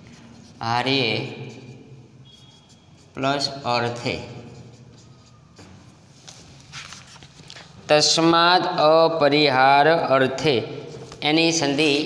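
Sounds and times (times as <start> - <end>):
marker scratching on whiteboard: 0.0 - 7.4, 10.6 - 12.0
book being handled: 4.9 - 7.9, 10.9 - 11.2.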